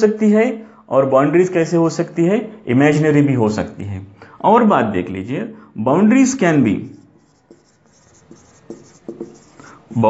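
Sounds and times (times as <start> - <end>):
marker pen on whiteboard: 6.3 - 10.0.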